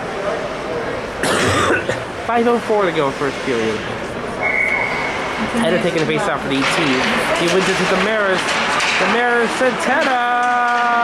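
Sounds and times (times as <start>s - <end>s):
low background murmur: 0.0s - 11.0s
person coughing: 1.2s - 2.1s.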